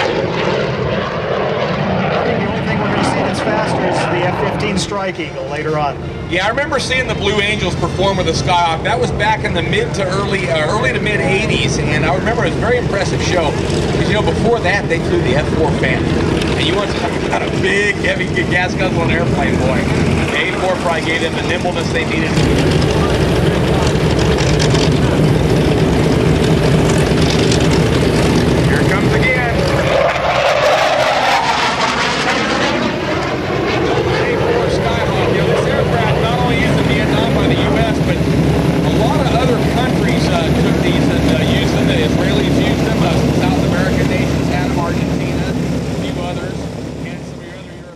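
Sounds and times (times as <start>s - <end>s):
jet making a loud pass: 0.0s - 47.9s.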